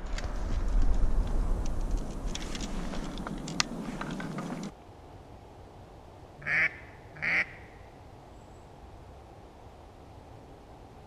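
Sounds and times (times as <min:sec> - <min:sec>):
faint background hiss: 0:00.0 - 0:11.0
duck quacks: 0:06.4 - 0:07.8.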